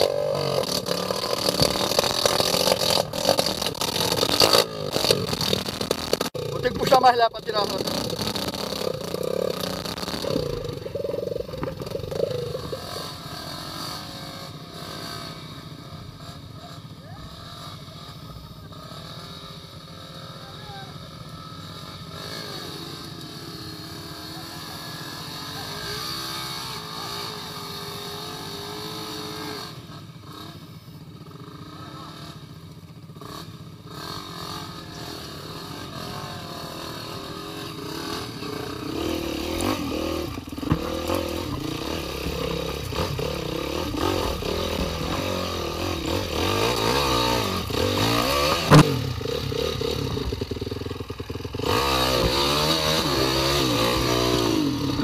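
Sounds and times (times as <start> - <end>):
dirt bike engine idling and revving: 0.0 - 55.0.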